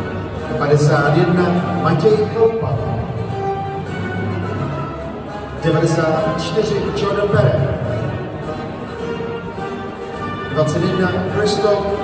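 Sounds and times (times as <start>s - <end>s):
music over loudspeakers: 0.0s - 12.0s.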